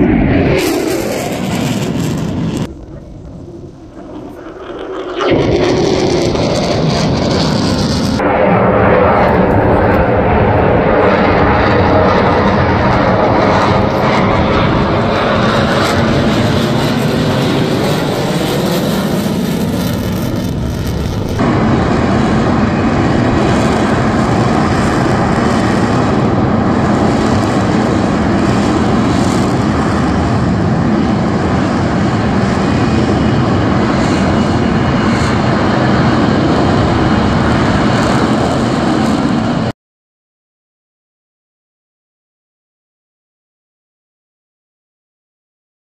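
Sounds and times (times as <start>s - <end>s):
jet flying past whooshing: 0.0s - 39.7s
jet hovering loud noise: 0.0s - 39.8s.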